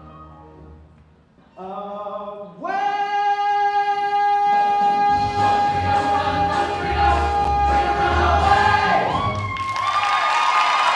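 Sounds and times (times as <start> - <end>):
audience cheering and whooping: 8.4 - 10.9.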